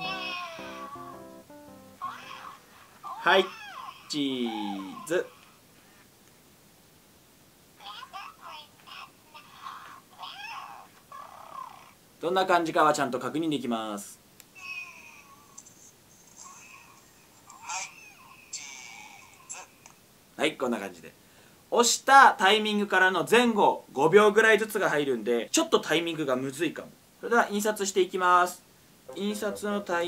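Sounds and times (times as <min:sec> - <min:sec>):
plucked guitar music: 0:00.0 - 0:02.6, 0:29.1 - 0:29.7
voice-like sound from small speaker: 0:07.8 - 0:11.9.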